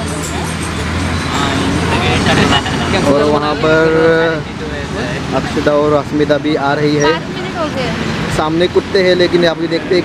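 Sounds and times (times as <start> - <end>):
street traffic: 0.0 - 10.0
voices calling out: 0.0 - 10.0.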